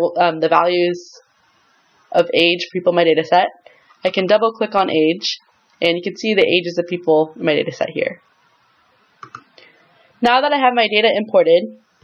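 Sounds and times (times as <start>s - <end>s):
soft mouse clicks: 9.2s - 9.5s.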